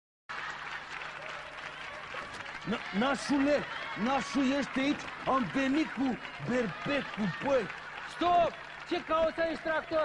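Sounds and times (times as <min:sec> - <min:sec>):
audience applause: 0:00.3 - 0:10.0.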